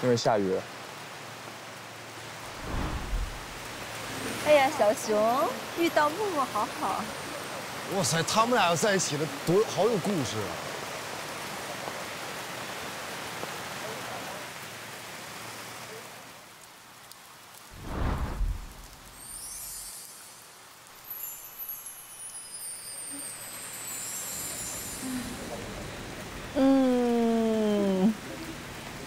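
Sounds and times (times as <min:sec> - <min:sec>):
rain hiss: 0:00.0 - 0:29.0
faint high gliding sound: 0:02.4 - 0:03.8.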